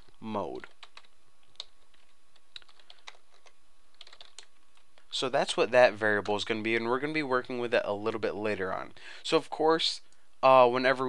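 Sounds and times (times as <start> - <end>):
keyboard typing: 0.0 - 5.1.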